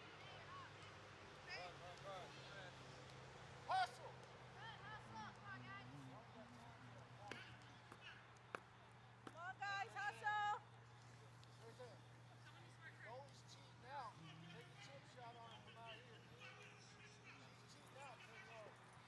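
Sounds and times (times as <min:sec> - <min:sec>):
distant shouts of players: 0:03.6 - 0:06.0, 0:13.7 - 0:18.8.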